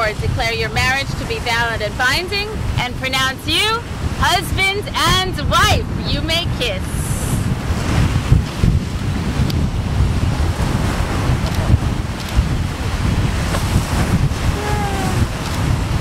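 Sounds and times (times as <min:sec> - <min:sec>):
wind buffeting microphone: 0:00.0 - 0:16.0
surf breaking on beach: 0:07.1 - 0:16.0.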